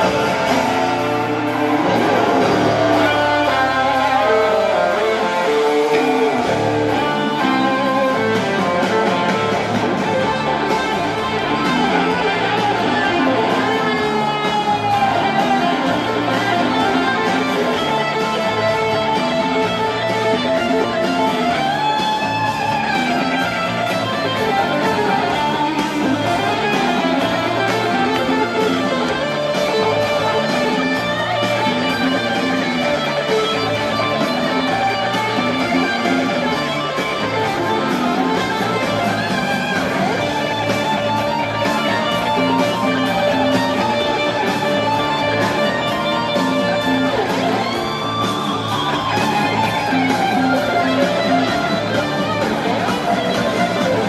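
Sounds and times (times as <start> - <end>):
electric guitar lead with bent notes: 0.0 - 54.0
live rock band instrumental: 0.0 - 54.0.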